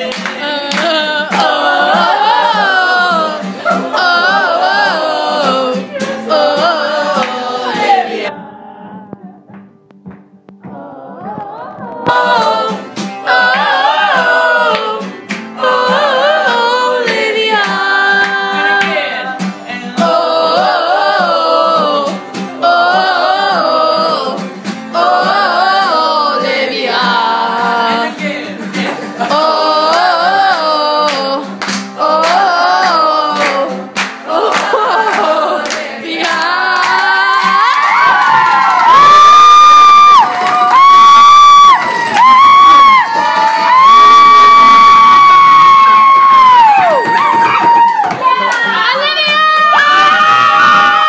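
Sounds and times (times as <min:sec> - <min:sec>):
group of voices singing: 0:00.0 - 0:09.5, 0:10.6 - 0:40.9, 0:48.1 - 0:51.0
cheering: 0:34.3 - 0:51.0.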